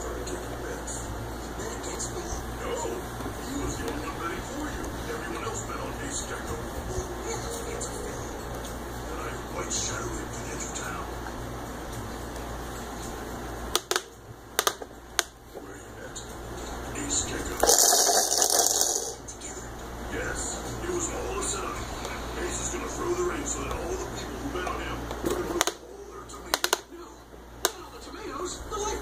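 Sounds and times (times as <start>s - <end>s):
faint television voices: 0.0s - 29.0s
steady low hum: 0.0s - 29.0s
television music: 0.0s - 29.0s
plastic toy rattling: 17.6s - 19.2s.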